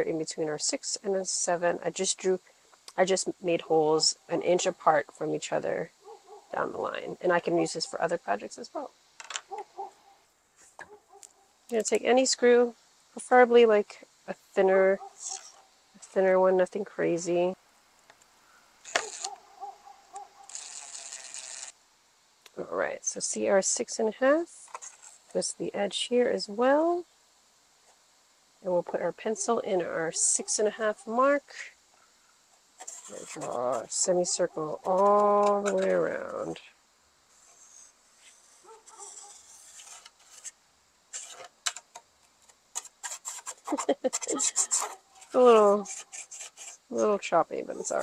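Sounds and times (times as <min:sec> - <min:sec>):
pencil scratching on wooden door: 0:32.8 - 0:33.8, 0:37.4 - 0:40.5, 0:42.8 - 0:46.9.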